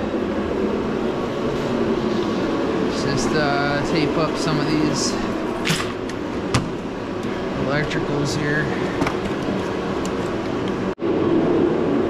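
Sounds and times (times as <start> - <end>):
machine drone with low hum: 0.0 - 12.0.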